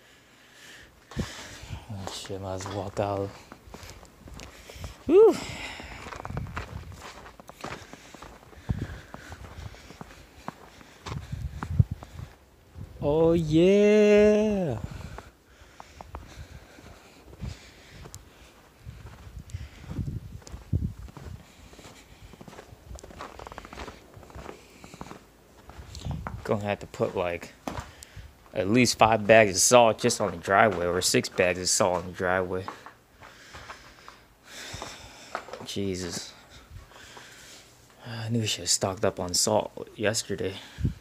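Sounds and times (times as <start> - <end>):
footsteps in deep snow: 1.1 - 5.0, 5.6 - 13.0, 14.9 - 32.1.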